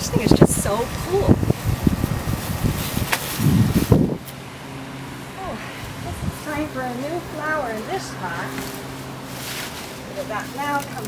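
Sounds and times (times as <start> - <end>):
steady low hum: 0.0 - 11.0
wind buffeting microphone: 0.0 - 11.0.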